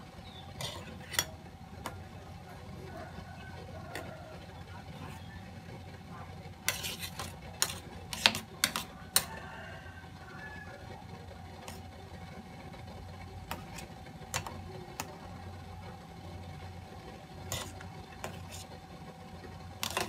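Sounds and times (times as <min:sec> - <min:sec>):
gas stove burner humming: 0:00.0 - 0:20.0.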